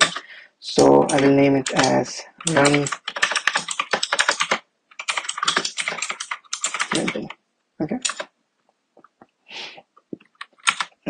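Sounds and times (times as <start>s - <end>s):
keyboard typing: 0.0s - 7.4s, 8.0s - 8.4s, 10.2s - 11.0s.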